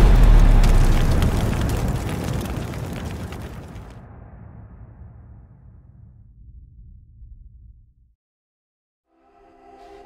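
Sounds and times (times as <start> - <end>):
deep cinematic boom rumble: 0.0 - 2.6, 3.9 - 8.2
fiery crackles: 0.0 - 5.2.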